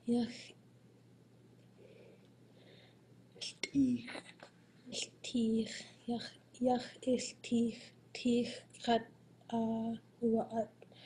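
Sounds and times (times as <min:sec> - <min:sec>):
faint whispery breath: 0:01.8 - 0:03.0.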